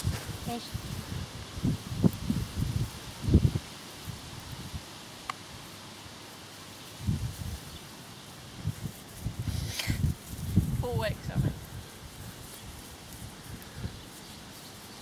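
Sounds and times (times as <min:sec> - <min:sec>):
faint steady rustle: 0:00.0 - 0:15.0
sharp tick: 0:05.2 - 0:05.4.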